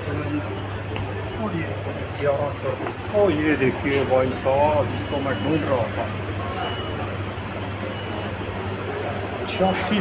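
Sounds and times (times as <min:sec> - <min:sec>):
even background noise: 0:00.0 - 0:10.0.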